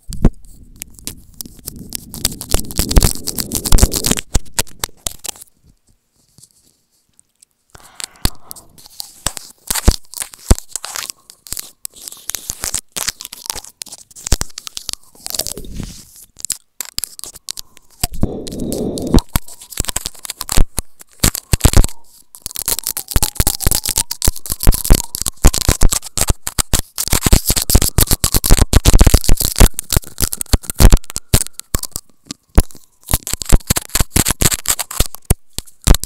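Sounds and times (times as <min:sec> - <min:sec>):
teeth nibbling on microphone: 0:00.0 - 0:36.0.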